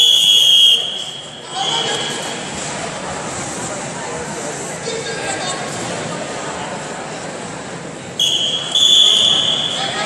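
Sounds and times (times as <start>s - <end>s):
referee's whistle blasts: 0.0s - 2.3s, 8.2s - 10.0s
crowd chatter: 0.0s - 10.0s.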